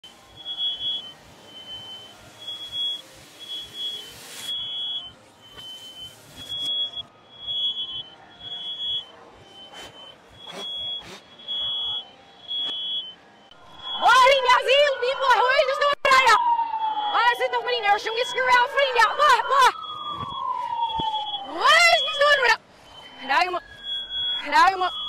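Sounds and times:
smoke alarm beeping: 0.1 - 16.0, 16.8 - 25.0.

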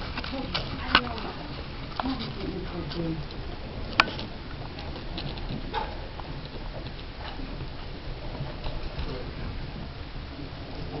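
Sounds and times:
rat chewing grass: 0.0 - 11.0
steady background noise: 0.0 - 11.0.

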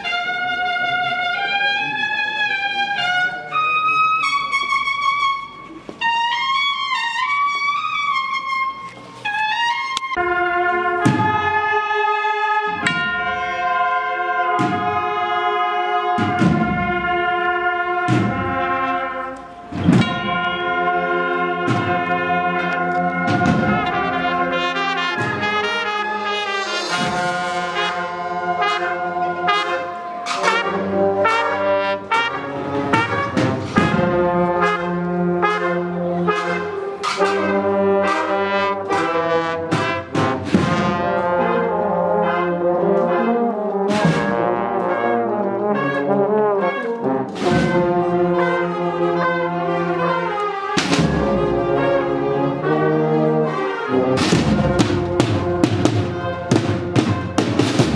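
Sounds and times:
brass marching band: 0.0 - 57.9
percussion strikes: 10.0 - 15.2, 15.8 - 35.7, 36.3 - 49.8, 50.8 - 52.8, 54.0 - 57.9.

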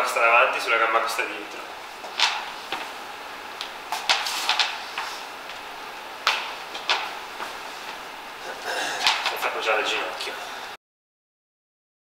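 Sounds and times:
steady room hiss: 0.0 - 10.8
feet stepping on gym floor: 1.9 - 9.5.

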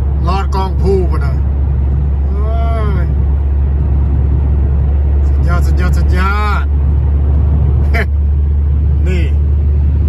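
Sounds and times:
car road rumble in tunnel: 0.0 - 10.0.

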